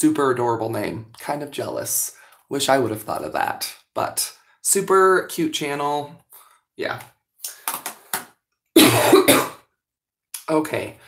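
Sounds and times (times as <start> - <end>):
woman coughing: 8.8 - 9.6.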